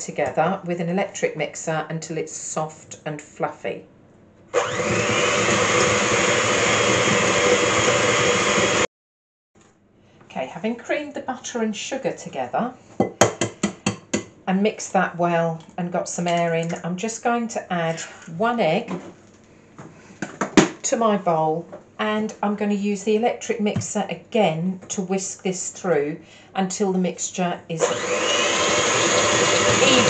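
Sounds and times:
electric hand mixer running: 4.5 - 8.9, 27.8 - 30.0
hand mixer clicking and knocking: 27.8 - 30.0.

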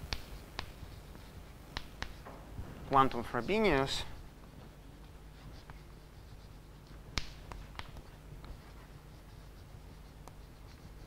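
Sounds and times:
chalk tapping on board: 0.0 - 2.3, 5.4 - 11.0
chalk scratching on blackboard: 0.1 - 2.2, 5.0 - 11.0.

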